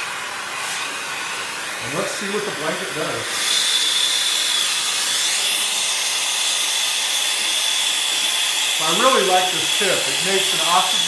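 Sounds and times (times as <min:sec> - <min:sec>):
torch flame hissing with whistle: 0:00.0 - 0:11.0.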